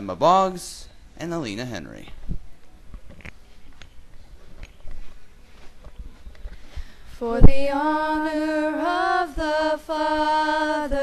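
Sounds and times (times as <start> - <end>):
microphone handling clicks and knocks: 2.1 - 5.2.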